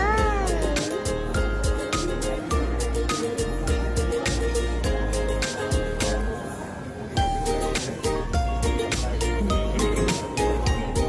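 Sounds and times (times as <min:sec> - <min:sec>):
child's vocal sound: 0:00.0 - 0:01.2
music with steady beat: 0:00.0 - 0:06.3, 0:07.2 - 0:11.0.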